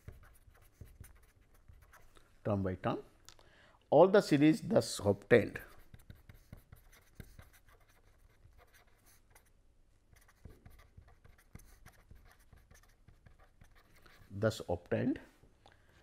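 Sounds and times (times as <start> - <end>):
pen scratching on paper: 0.0 - 2.1, 5.7 - 9.5, 10.2 - 14.4.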